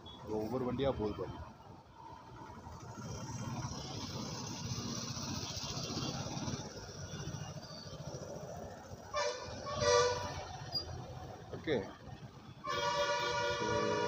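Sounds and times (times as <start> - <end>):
vehicle engines passing: 0.0 - 14.0
vehicle horn honking: 9.1 - 10.5, 12.6 - 14.0.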